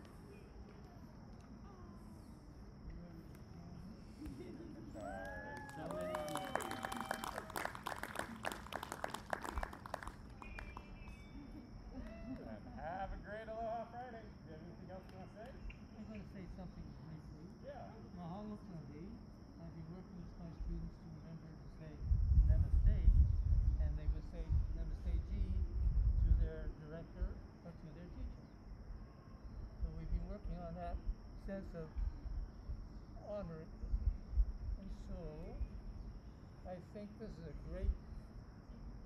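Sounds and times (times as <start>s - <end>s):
distant group clapping: 4.2s - 12.5s
voices calling out: 4.3s - 8.6s.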